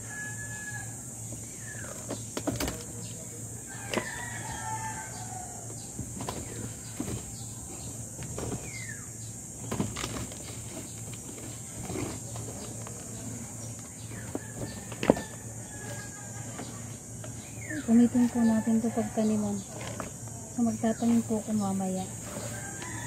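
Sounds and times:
bird calls: 0.6 - 11.0
compost scooping knocks and rustles: 1.2 - 18.4, 19.0 - 23.0.

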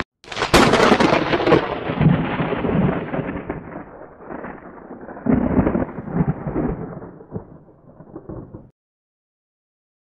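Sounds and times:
thunder-like rumble: 0.4 - 8.7.

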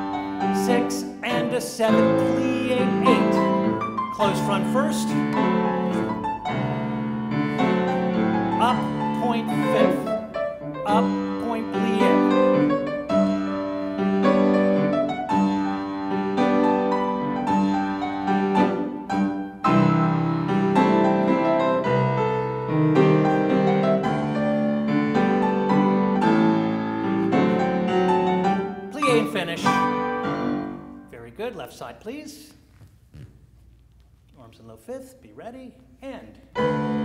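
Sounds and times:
grand piano playing: 0.0 - 31.4, 36.4 - 37.0.

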